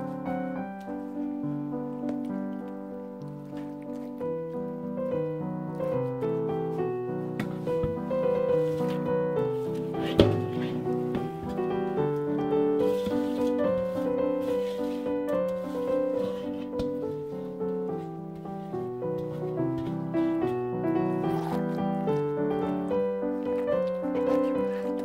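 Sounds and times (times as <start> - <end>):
piano music: 0.0 - 25.0.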